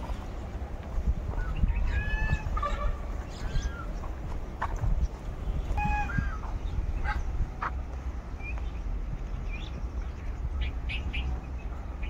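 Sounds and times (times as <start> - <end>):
birds calling: 0.0 - 12.0
steady low rumble: 0.0 - 12.0.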